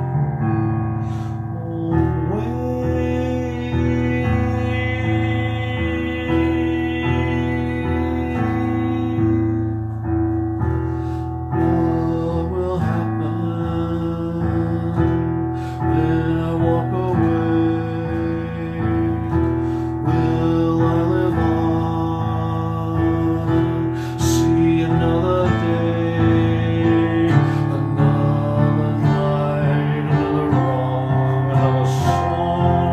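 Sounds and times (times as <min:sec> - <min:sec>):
man singing: 0:00.0 - 0:10.5, 0:11.1 - 0:32.9
electronic keyboard chords: 0:00.0 - 0:32.9.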